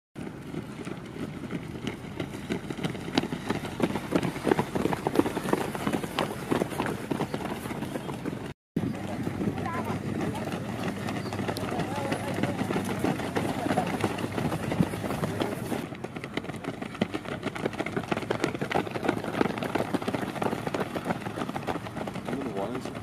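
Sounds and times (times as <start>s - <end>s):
runners footsteps on dirt: 0.2s - 23.0s
people talking and calling: 3.6s - 23.0s.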